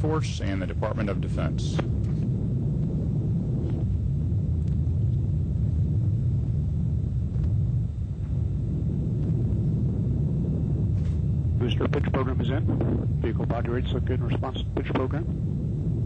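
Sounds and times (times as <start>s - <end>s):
rocket engine low rumble: 0.0s - 16.0s.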